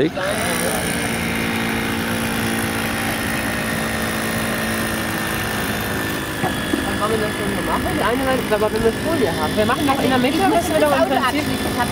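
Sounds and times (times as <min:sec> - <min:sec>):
engine running steadily: 0:00.0 - 0:11.9.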